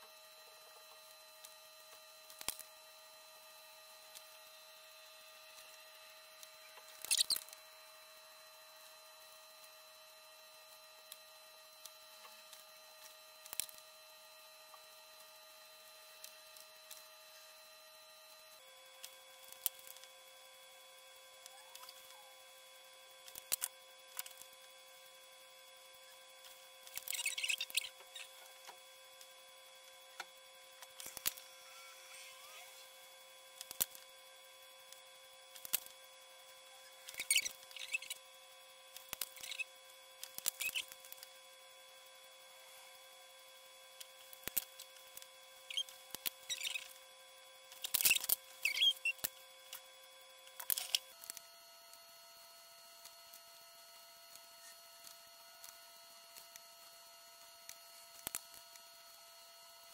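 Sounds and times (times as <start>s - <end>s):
markers scratching on paper: 26.9s - 28.4s, 36.9s - 38.2s, 39.0s - 39.7s, 45.7s - 46.9s.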